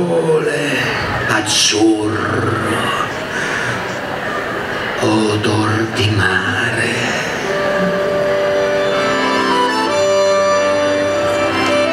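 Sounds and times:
accordion playing held chords: 0:07.1 - 0:11.9.

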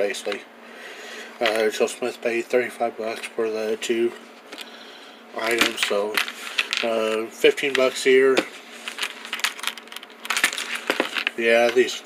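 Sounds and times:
case clicks and scrapes: 0:08.9 - 0:11.8.

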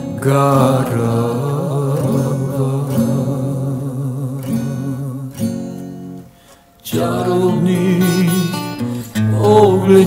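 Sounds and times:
acoustic guitar playing: 0:00.0 - 0:10.0.

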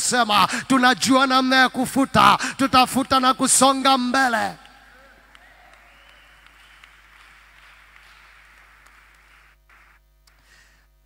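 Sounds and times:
low electrical hum: 0:00.0 - 0:11.0
faint applause: 0:04.7 - 0:10.0.

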